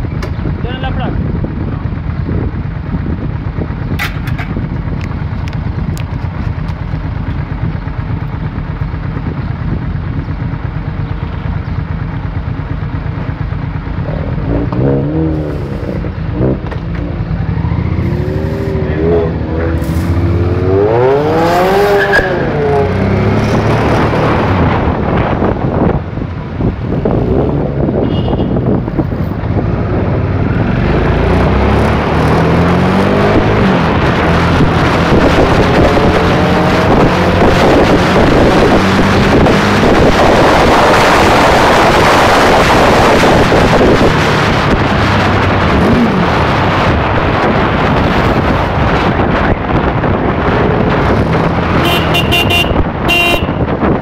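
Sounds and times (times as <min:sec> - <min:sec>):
car engine revving: 0:14.0 - 0:28.0, 0:28.7 - 0:53.4.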